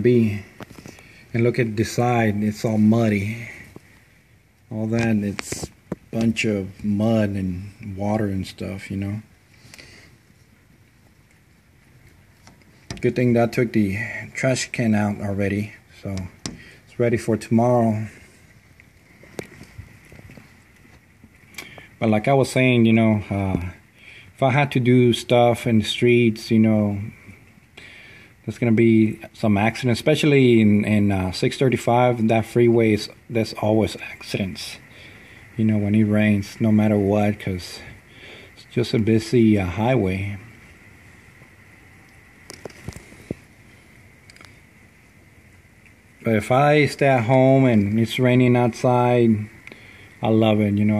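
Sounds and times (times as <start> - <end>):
rain heard through window: 0.0 - 50.9.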